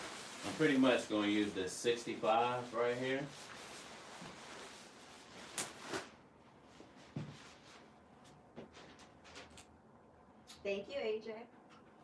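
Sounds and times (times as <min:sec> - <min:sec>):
fabric rustling: 0:02.2 - 0:09.6.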